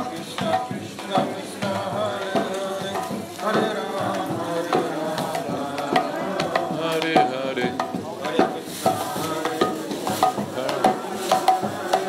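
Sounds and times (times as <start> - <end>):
cymbals striking: 0.0 - 12.0
hand drum beat: 0.0 - 12.0
voices singing: 0.0 - 12.0.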